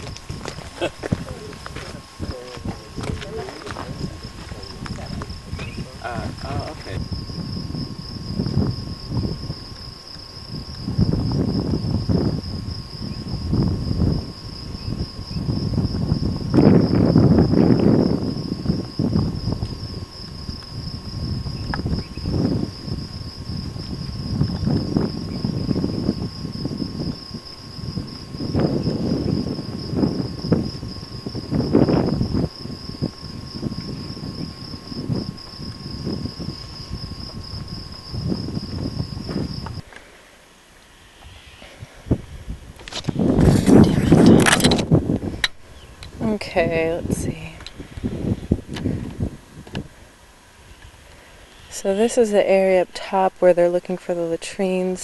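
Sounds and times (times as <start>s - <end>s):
low rumbling on microphone: 0.0s - 40.2s, 40.9s - 53.1s
high-pitched insect trill: 0.0s - 55.0s.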